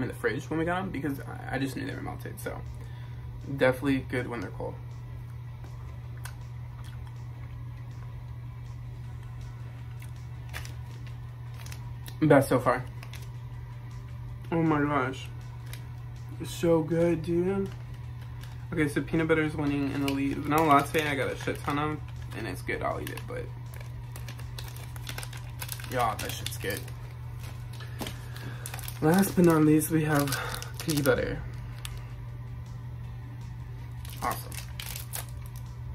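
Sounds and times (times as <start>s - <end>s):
steady low hum: 0.0s - 35.9s
person speaking: 28.5s - 31.7s, 34.1s - 34.8s.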